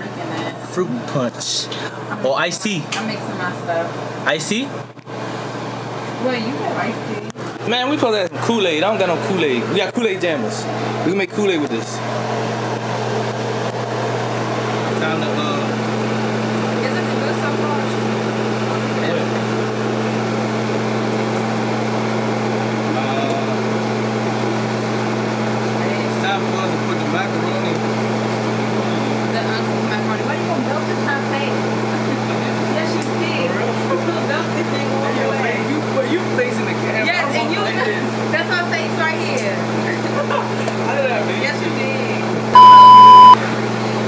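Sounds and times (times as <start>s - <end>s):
steady low hum: 42.6s - 43.4s.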